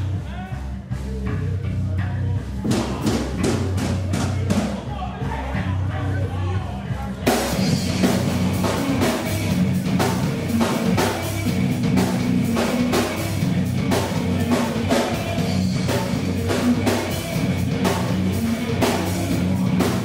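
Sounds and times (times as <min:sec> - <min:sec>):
drums hitting: 0:00.0 - 0:05.8, 0:06.8 - 0:20.0
rock band playing: 0:00.0 - 0:20.0.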